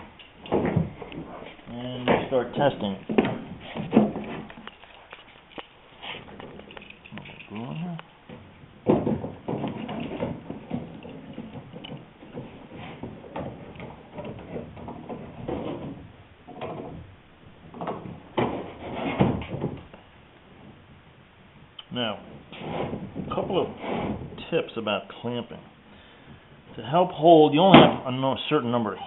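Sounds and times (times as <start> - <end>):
metal clinks: 4.6 - 8.1.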